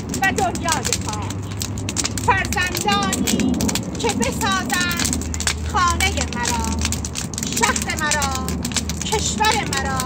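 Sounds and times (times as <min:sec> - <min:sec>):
bonfire crackling and popping: 0:00.0 - 0:10.0
people's voices: 0:00.0 - 0:10.0.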